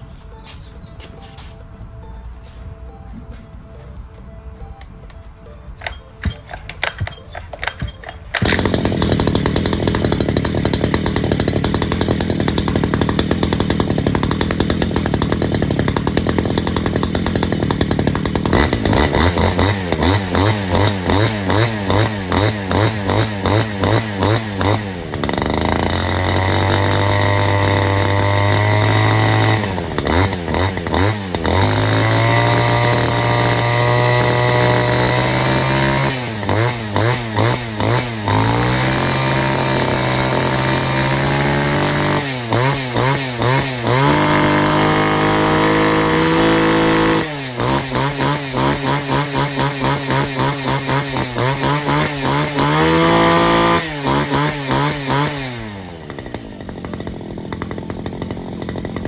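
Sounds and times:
two-stroke brushcutter engine revving: 0:05.7 - 0:59.0.

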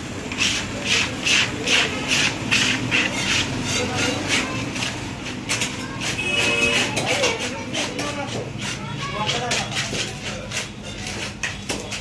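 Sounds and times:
blade scraping fish scales: 0:00.3 - 0:12.0.

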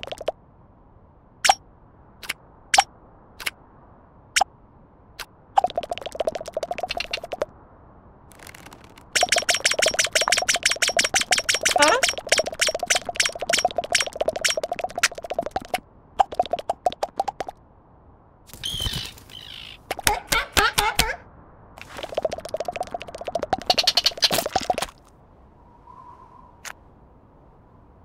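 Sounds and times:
cartoon bird pecking taps: 0:05.6 - 0:07.5, 0:09.2 - 0:17.6, 0:21.9 - 0:24.8.

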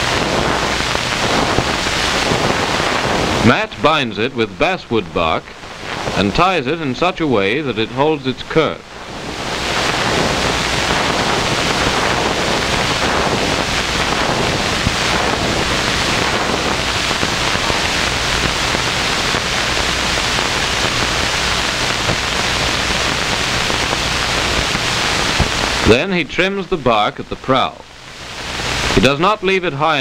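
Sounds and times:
film soundtrack hiss: 0:00.0 - 0:30.0.

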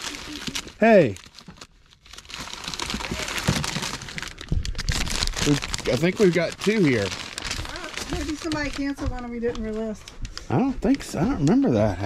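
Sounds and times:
plastic bags crinkling: 0:00.0 - 0:12.0.

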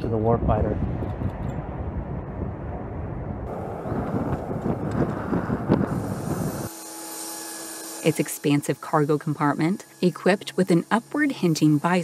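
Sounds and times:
jet engines rumbling overhead: 0:00.0 - 0:06.7
high whine: 0:01.4 - 0:12.0.

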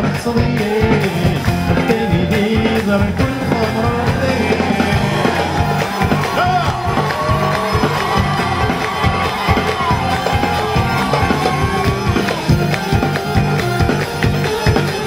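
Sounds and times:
band playing mandole and drums: 0:00.0 - 0:15.0
crowd cheering: 0:00.8 - 0:15.0.

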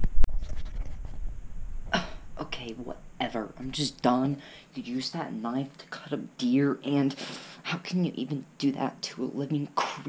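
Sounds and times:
man coughing: 0:02.0 - 0:02.3.

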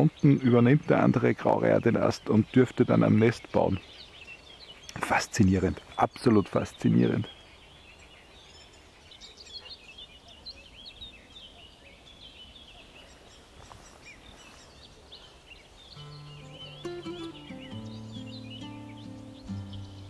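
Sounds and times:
songbirds chirping: 0:00.0 - 0:20.0
music with low held notes: 0:16.0 - 0:20.0.

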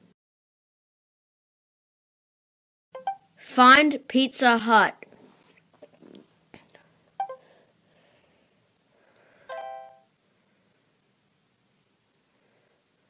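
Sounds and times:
electronic chime: 0:03.0 - 0:03.2, 0:07.2 - 0:07.4, 0:09.5 - 0:10.0.

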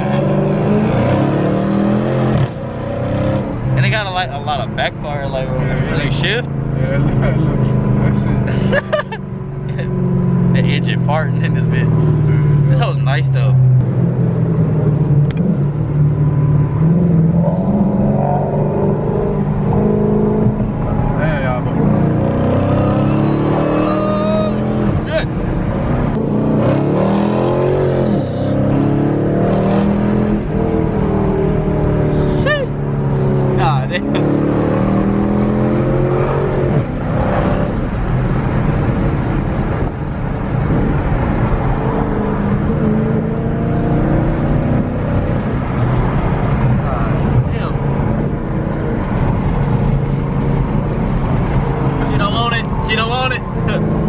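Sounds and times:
car engine accelerating: 0:00.0 - 0:54.0.

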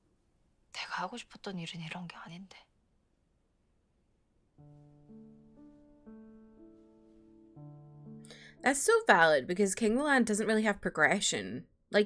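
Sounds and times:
woman speaking: 0:00.8 - 0:02.7, 0:08.6 - 0:12.0.

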